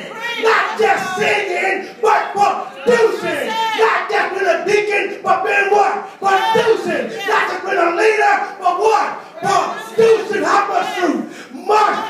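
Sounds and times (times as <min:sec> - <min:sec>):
congregation calling out: 0:00.0 - 0:12.0
preacher shouting into microphone: 0:00.0 - 0:12.0.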